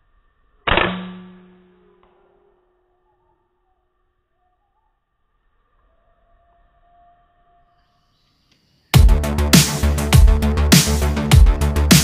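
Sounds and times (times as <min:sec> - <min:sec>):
rifle shot: 0:00.7 - 0:01.6.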